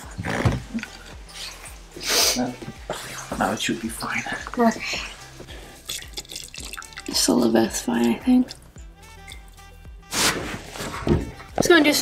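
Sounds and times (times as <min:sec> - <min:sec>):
liquid trickling and dripping: 0:03.4 - 0:09.7.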